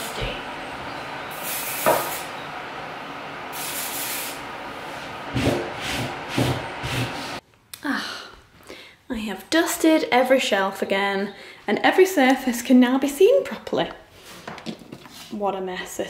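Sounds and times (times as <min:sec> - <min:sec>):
cleaning spray hissing: 0:00.0 - 0:07.4.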